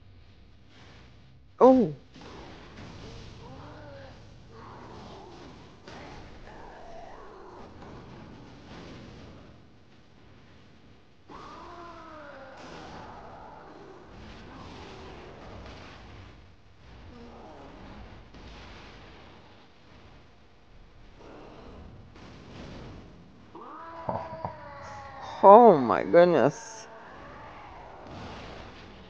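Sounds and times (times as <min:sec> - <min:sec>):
long wailing cry: 0:23.7 - 0:28.0.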